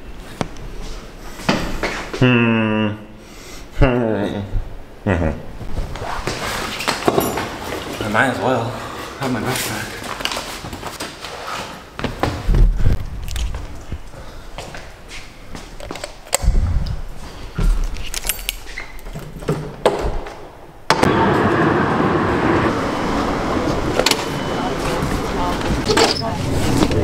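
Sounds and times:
door opening: 23.5s - 27.0s.

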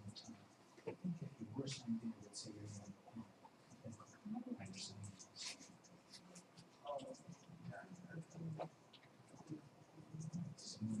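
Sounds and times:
faint voice: 0.0s - 8.7s, 9.3s - 11.0s
faint scratchy sounds: 0.0s - 11.0s
low room hum: 0.0s - 11.0s.

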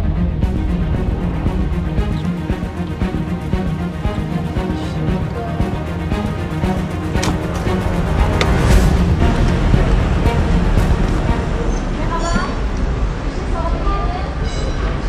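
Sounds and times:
background music: 0.0s - 13.8s
steady low rumble: 0.0s - 14.2s.

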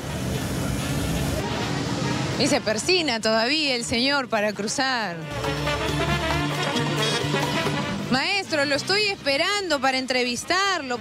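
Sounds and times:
cars driving past: 0.0s - 3.2s, 5.2s - 9.8s.

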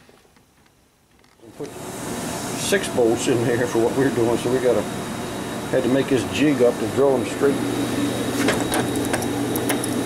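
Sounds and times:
steady low hum: 1.4s - 10.0s.

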